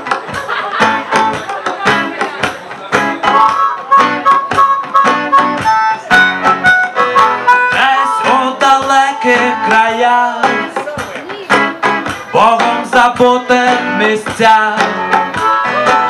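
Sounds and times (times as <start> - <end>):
hand drums: 0.0 - 16.0
strummed acoustic guitar: 0.0 - 16.0
harmonica melody: 2.9 - 10.7, 11.5 - 16.0.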